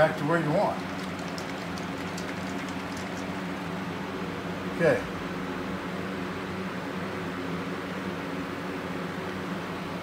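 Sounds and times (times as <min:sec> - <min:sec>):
box fan humming: 0:00.0 - 0:10.0.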